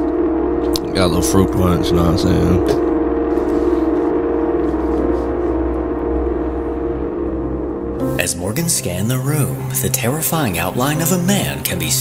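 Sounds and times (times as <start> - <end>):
gong-like held tones: 0.0 - 11.1
low drone: 0.0 - 12.0.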